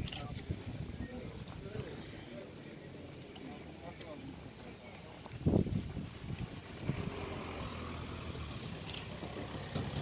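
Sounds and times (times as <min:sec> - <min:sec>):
engine idling: 0:06.3 - 0:10.0.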